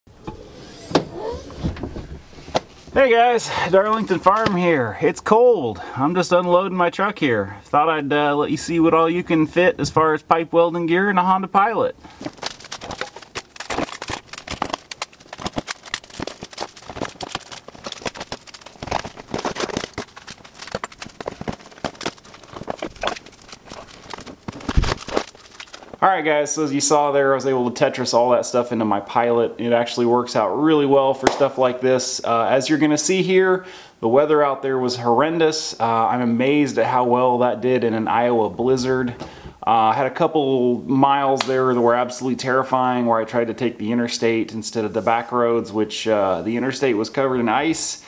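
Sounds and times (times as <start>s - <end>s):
equipment cases clattering and knocking: 12.1s - 26.0s.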